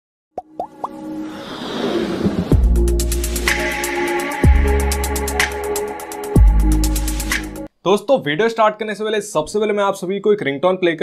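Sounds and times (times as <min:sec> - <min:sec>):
electronic riser with held tones: 0:01.0 - 0:05.9.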